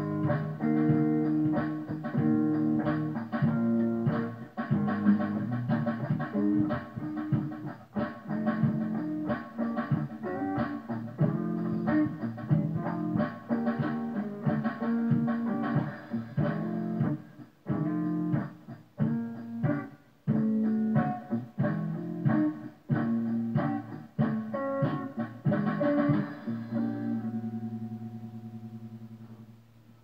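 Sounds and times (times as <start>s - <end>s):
funky electric guitar chords: 0.0s - 29.6s.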